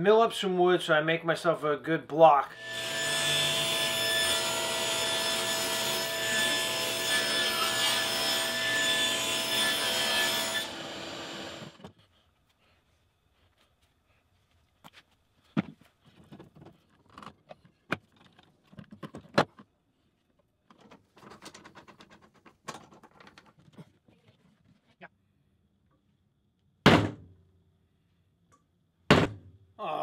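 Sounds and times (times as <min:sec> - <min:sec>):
loud clunk: 0:29.1 - 0:29.5.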